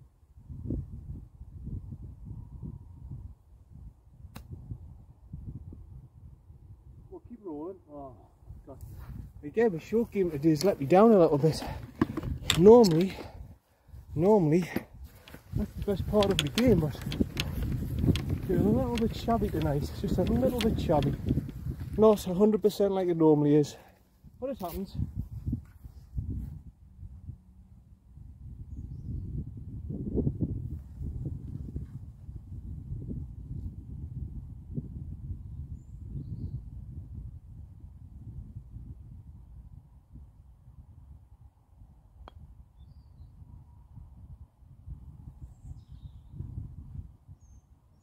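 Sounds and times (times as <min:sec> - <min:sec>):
wind buffeting microphone: 0:00.0 - 0:47.6
faint bird chirps: 0:42.8 - 0:43.4.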